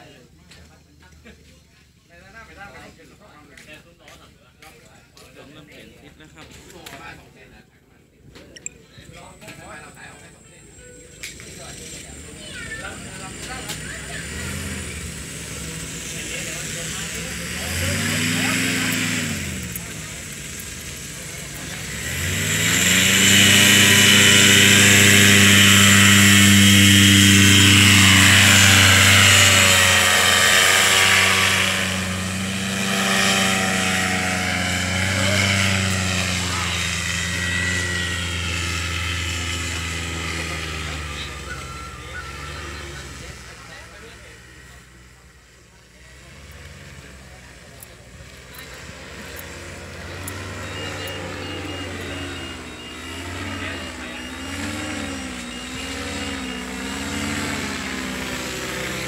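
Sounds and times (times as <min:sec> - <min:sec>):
paramotor engine and propeller: 0:00.0 - 0:59.0.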